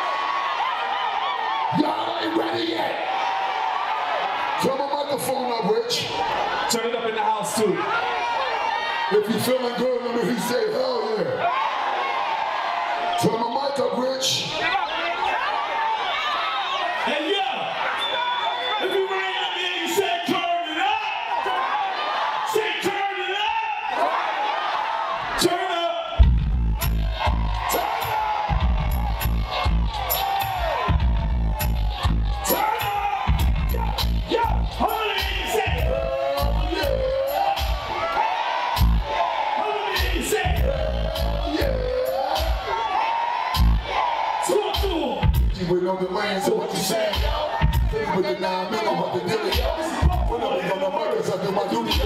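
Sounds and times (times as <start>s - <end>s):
crowd yelling: 0.0s - 52.0s
man rapping into microphone: 9.1s - 11.4s, 25.4s - 38.0s, 38.8s - 43.0s, 43.6s - 52.0s
hip-hop beat over pa: 26.2s - 52.0s.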